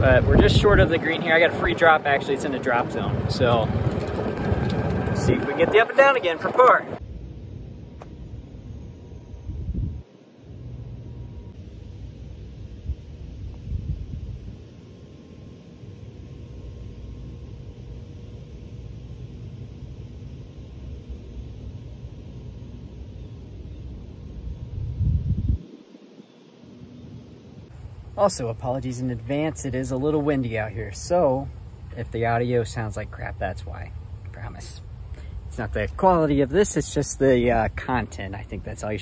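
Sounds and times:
wind buffeting microphone: 0:00.0 - 0:07.0, 0:09.4 - 0:10.1, 0:12.7 - 0:14.9, 0:23.8 - 0:26.3.

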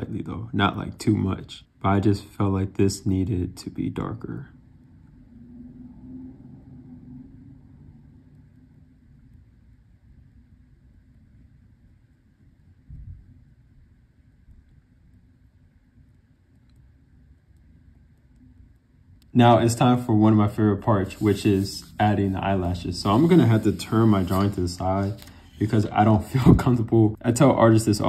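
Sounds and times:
low background rumble: 0:00.0 - 0:28.0.

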